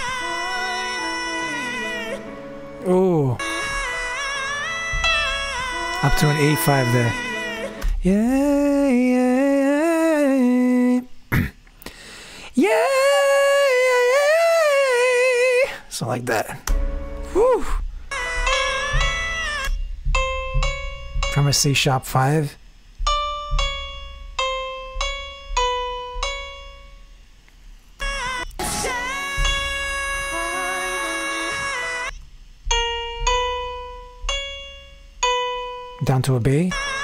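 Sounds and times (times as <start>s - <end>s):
single piano notes: 0.0s - 8.1s, 16.6s - 22.3s, 22.9s - 37.0s
backing music: 0.0s - 8.7s, 16.7s - 21.8s, 28.0s - 37.0s
man singing high note: 0.0s - 11.1s, 12.6s - 15.8s, 28.0s - 32.1s.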